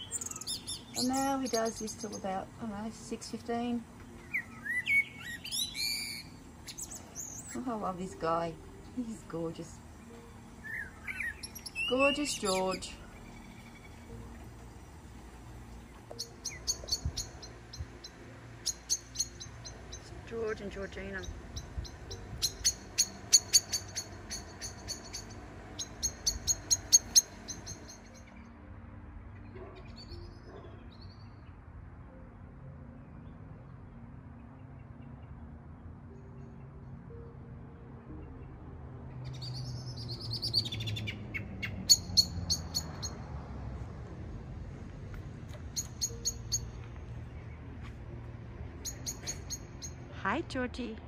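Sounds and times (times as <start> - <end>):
blackbird chink calls: 4.2 - 7.6, 10.6 - 14.0, 16.1 - 28.3.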